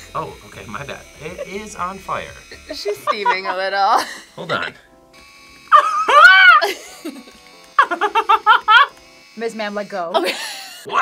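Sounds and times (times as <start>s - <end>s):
rapid laughter: 7.8s - 8.9s.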